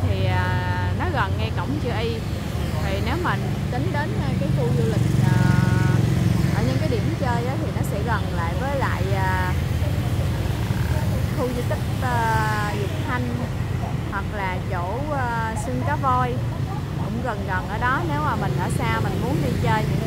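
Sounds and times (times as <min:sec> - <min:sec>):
motorbike traffic passing: 0:00.0 - 0:20.0
people chattering: 0:00.0 - 0:20.0.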